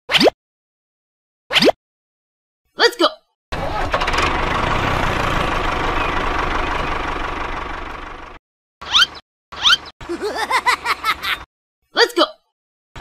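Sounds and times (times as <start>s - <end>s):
tractor engine running: 3.6s - 8.4s.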